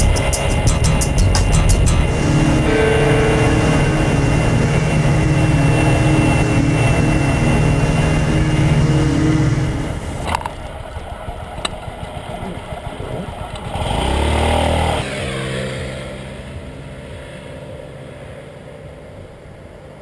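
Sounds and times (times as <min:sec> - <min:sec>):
scooter engine running: 0:00.0 - 0:20.0.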